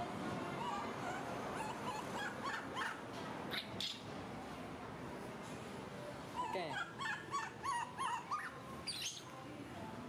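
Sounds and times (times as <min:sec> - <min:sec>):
steady background hum: 0:00.0 - 0:10.0
animal high-pitched cries: 0:00.5 - 0:04.0, 0:06.4 - 0:09.2.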